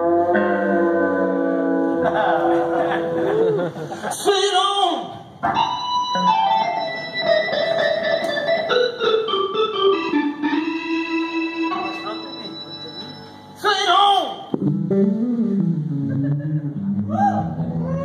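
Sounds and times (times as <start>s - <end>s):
blues band playing: 5.5s - 12.9s, 14.5s - 18.0s
electric organ sustained chords: 5.7s - 13.6s, 14.5s - 18.0s.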